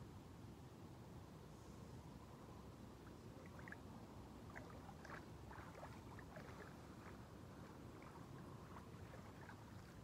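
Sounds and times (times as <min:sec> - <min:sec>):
low steady rumble: 0:00.0 - 0:10.0
water gurgling: 0:03.0 - 0:10.0
water sloshing and splashing: 0:03.0 - 0:10.0.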